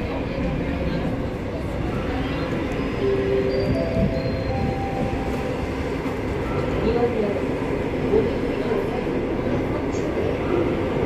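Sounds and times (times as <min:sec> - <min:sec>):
subway train rumbling in tunnel: 0:00.0 - 0:11.0.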